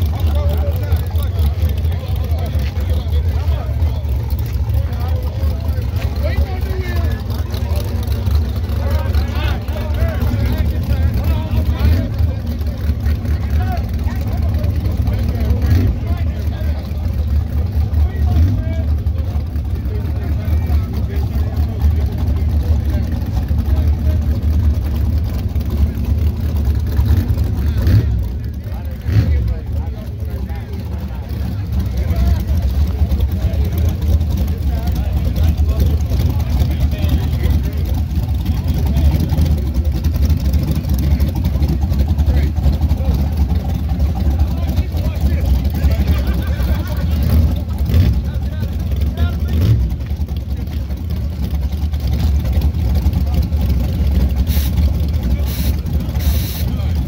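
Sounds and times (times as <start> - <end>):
car engine low rumble: 0.0 - 57.0.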